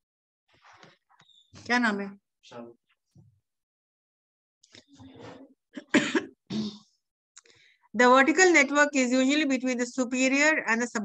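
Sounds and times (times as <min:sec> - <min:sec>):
soft throat sound: 0:04.8 - 0:07.0
person coughing: 0:05.8 - 0:06.9.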